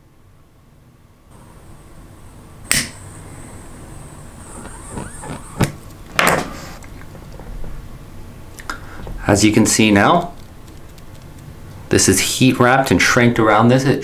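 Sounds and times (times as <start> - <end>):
lighter flame hissing: 2.6 - 7.1.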